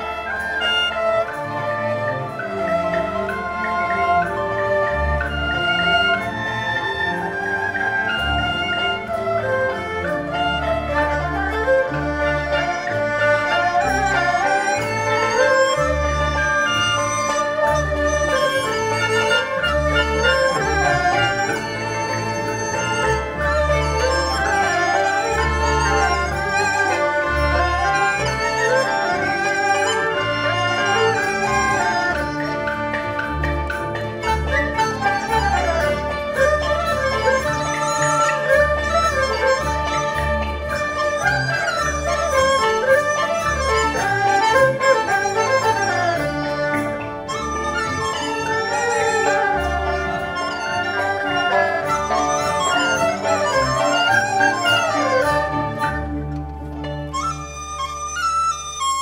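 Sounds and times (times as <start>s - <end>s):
bowed strings melody: 0.0s - 59.0s.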